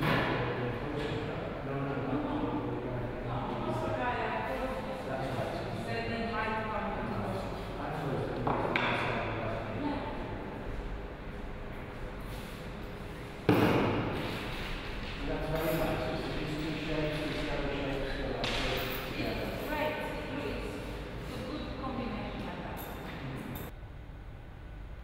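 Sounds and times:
loud thump: 13.5s - 14.2s.

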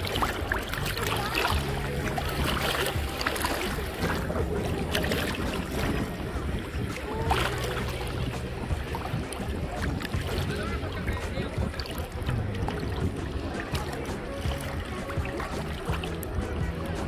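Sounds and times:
low wind rumble: 0.0s - 17.0s
small water splashes: 0.0s - 17.0s
water lapping and sloshing: 0.0s - 17.0s.

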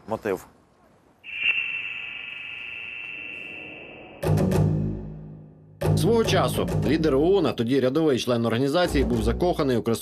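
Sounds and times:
high-pitched ringing tone: 1.2s - 5.5s.

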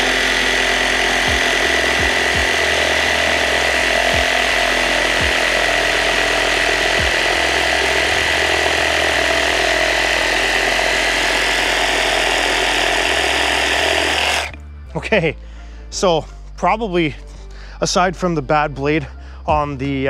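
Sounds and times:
reciprocating saw cutting wood: 0.0s - 14.6s.

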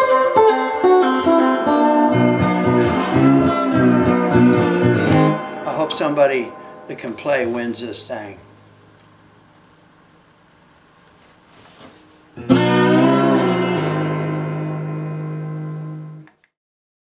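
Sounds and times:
slide guitar chord: 0.0s - 8.6s, 12.4s - 16.2s.

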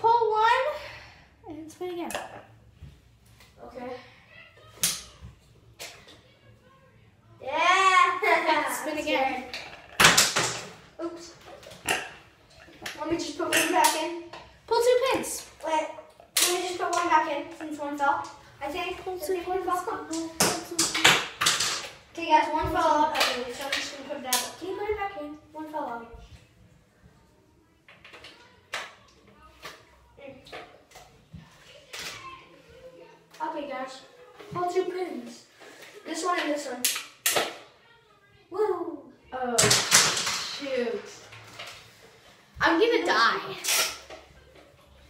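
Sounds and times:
children talking and exclaiming: 0.0s - 2.1s, 3.5s - 45.0s.

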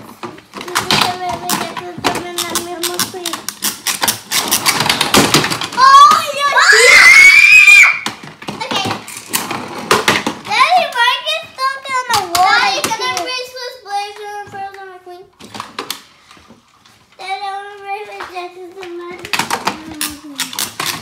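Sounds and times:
child squealing: 5.8s - 8.0s
child sing-song vocal sounds: 17.2s - 20.6s.

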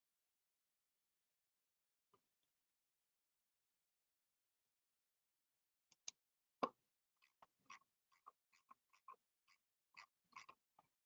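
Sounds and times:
faint small clicks and pops: 5.9s - 10.9s.

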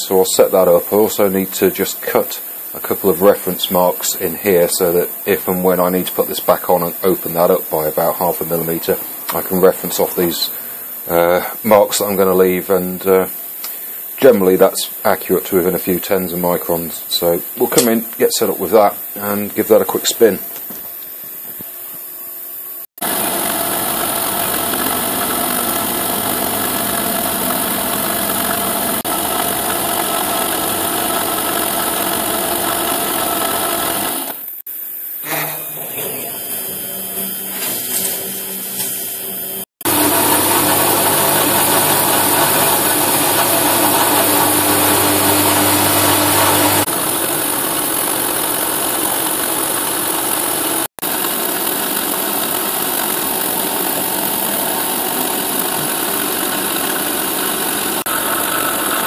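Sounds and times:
milling machine cutting metal: 23.0s - 59.0s.

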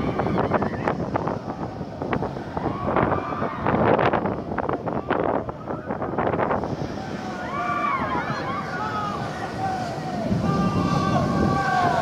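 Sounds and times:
roller coaster running on track: 0.0s - 12.0s
wind buffeting microphone: 0.0s - 12.0s.

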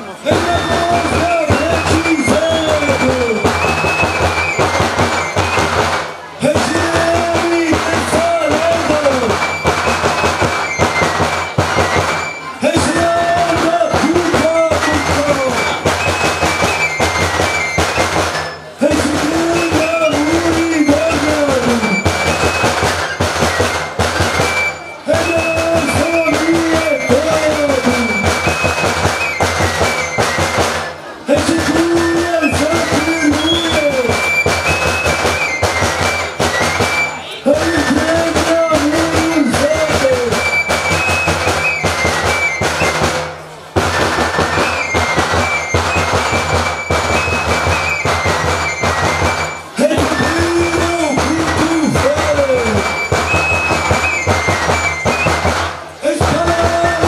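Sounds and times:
drums fast steady beat: 0.0s - 57.0s
high shepherd's flute tune: 0.0s - 57.0s.

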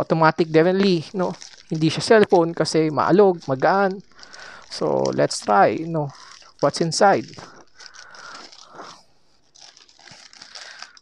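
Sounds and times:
plastic pouch crinkling: 0.0s - 11.0s.

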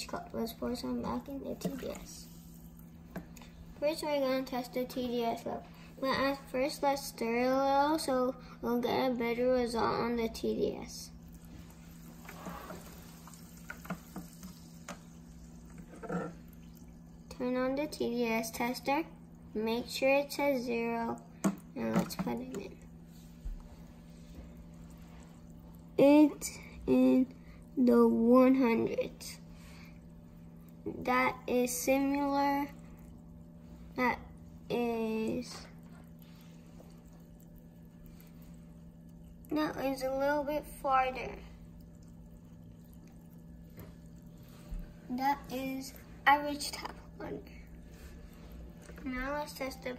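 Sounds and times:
carbonation fizzing: 0.0s - 8.4s, 9.0s - 49.9s
steady low hum: 0.0s - 49.9s.

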